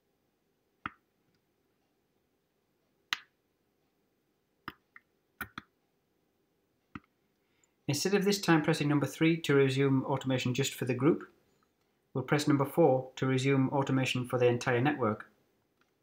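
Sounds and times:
man speaking: 7.9s - 11.4s, 12.2s - 15.3s.

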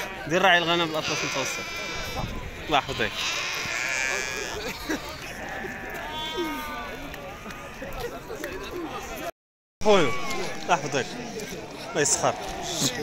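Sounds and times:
sheep bleating: 0.0s - 8.0s
market chatter: 0.0s - 13.0s.

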